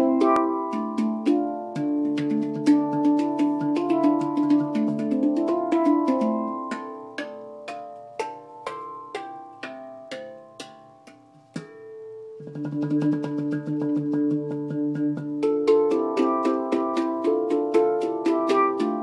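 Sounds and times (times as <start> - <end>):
handpan notes ringing: 0.0 - 19.0.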